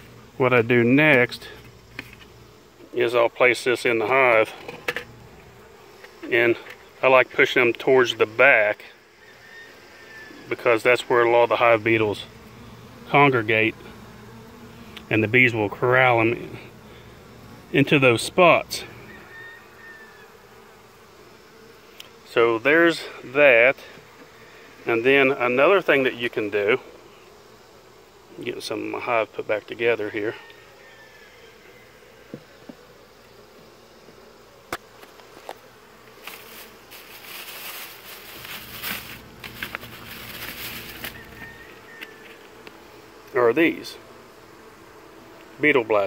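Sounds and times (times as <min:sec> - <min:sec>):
wooden hive parts scraping: 0:00.0 - 0:08.5, 0:31.6 - 0:46.0
bees buzzing: 0:00.0 - 0:46.0.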